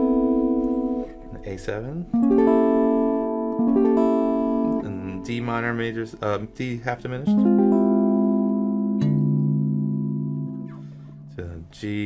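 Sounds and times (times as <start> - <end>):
clean electric guitar chord: 0.0 - 11.6
plucked bass note: 0.0 - 11.8.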